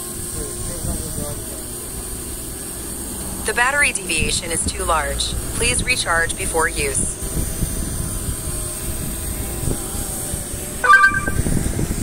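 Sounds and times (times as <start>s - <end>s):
drone propeller hum: 0.0s - 12.0s
wind rumble on microphone: 0.2s - 1.6s, 6.8s - 12.0s
short electronic beep: 10.8s - 11.5s.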